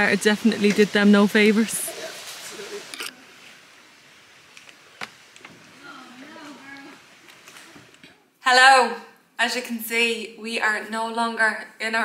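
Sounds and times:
faint water noise: 0:00.0 - 0:09.2.

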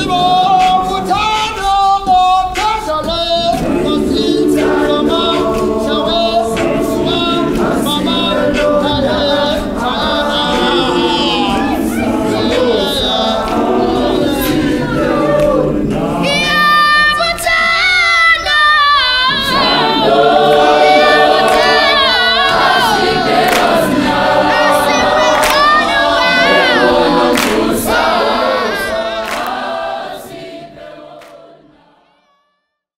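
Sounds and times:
gospel choir singing: 0:00.0 - 0:32.3.

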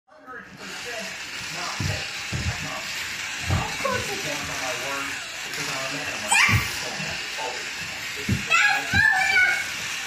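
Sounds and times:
toy car motor whirring: 0:00.1 - 0:10.0
voices talking: 0:00.2 - 0:10.0.

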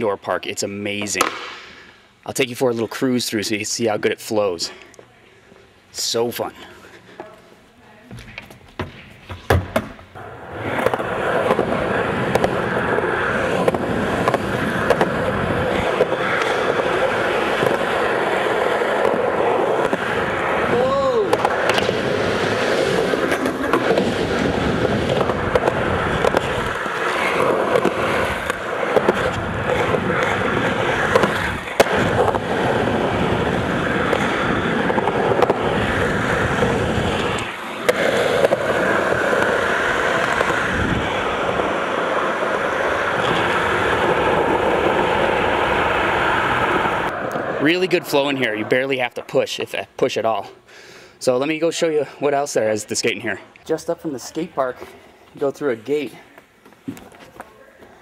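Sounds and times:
skateboard wheels rolling on concrete: 0:00.0 - 0:04.7, 0:06.0 - 0:58.0
skateboard clacks: 0:01.0 - 0:01.7, 0:08.5 - 0:47.6.

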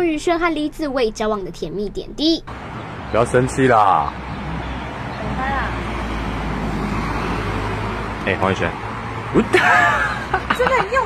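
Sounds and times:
road traffic rumble: 0:00.6 - 0:11.0.

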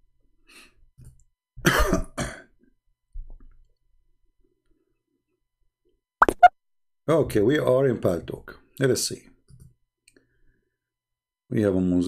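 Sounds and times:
man coughing: 0:01.6 - 0:02.5.

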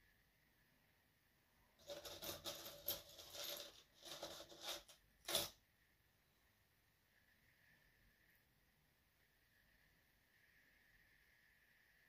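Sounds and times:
scratchy handling rustling: 0:01.8 - 0:05.5.

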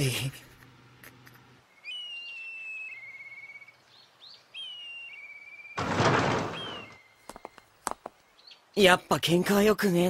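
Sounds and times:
bird whistle and buzzy trill: 0:01.7 - 0:07.6.

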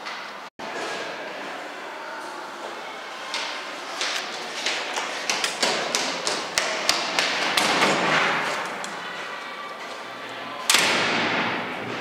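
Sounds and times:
running footsteps on hard floor: 0:04.0 - 0:10.0.

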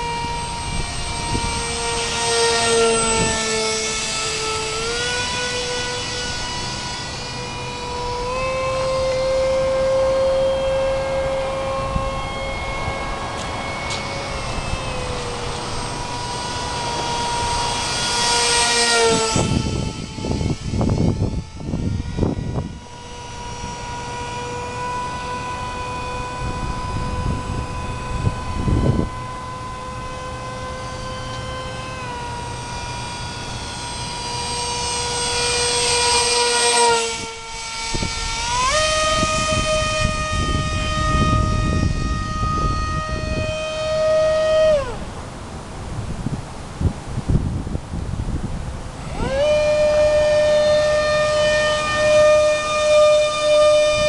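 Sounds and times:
model plane electric motor whine: 0:00.0 - 0:54.0
wind gusts on microphone: 0:00.0 - 0:54.0.

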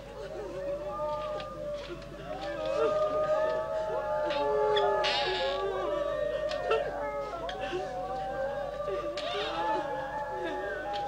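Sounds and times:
mourners wailing: 0:00.0 - 0:11.0.

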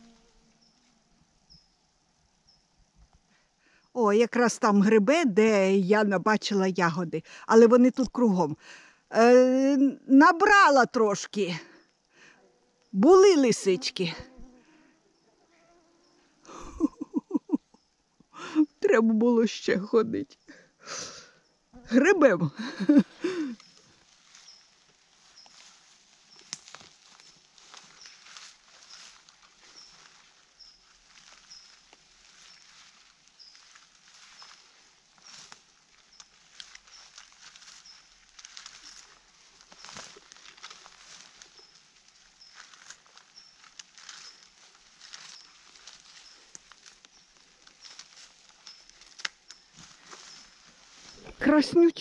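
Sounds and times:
rustling of leaves and twigs: 0:00.0 - 0:07.4, 0:10.7 - 0:18.5, 0:22.5 - 0:52.0
light clicks and snaps: 0:26.4 - 0:26.9, 0:47.9 - 0:49.6
faint high chirp: 0:33.4 - 0:35.5, 0:41.6 - 0:50.6.

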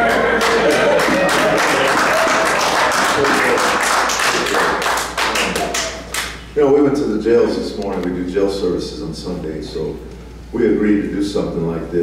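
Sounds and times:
cheers and shouts: 0:00.0 - 0:02.8
congregation applauding: 0:00.0 - 0:06.4.

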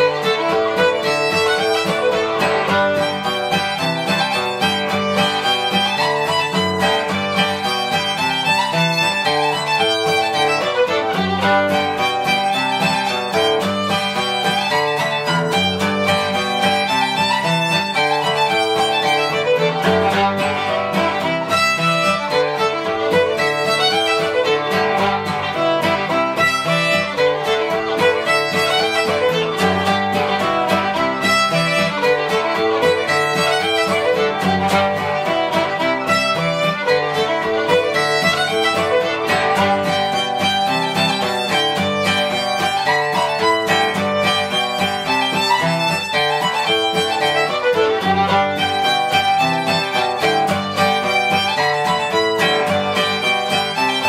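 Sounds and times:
fiddle tune: 0:00.0 - 0:54.0
plucked banjo: 0:00.0 - 0:54.0.

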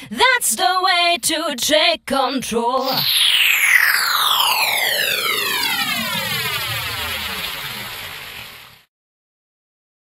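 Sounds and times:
electronic pitch-down sweep: 0:02.8 - 0:08.8.

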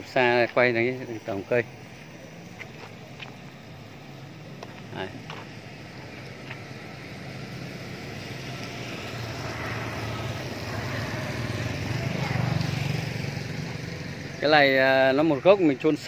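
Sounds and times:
passing vehicle engine hum: 0:00.0 - 0:16.0.

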